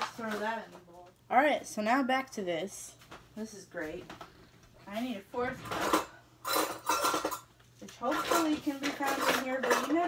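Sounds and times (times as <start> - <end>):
metal utensils clattering: 5.4 - 10.0.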